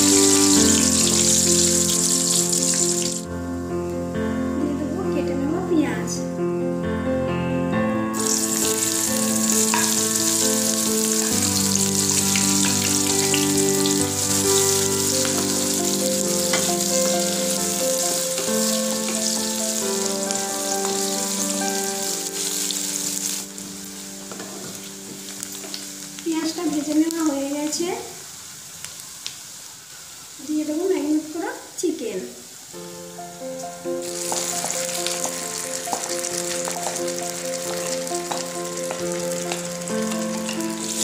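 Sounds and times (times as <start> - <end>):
onions sizzling in hot oil: 0.0 - 3.3, 8.1 - 41.0
background music: 0.0 - 27.5, 32.8 - 41.0.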